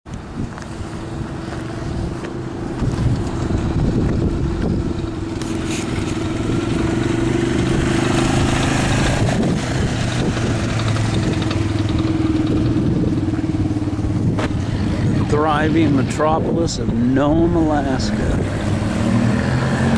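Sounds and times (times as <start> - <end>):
hiss of tyres or wind: 0.2 - 11.6
small vehicle engine running: 0.4 - 16.1.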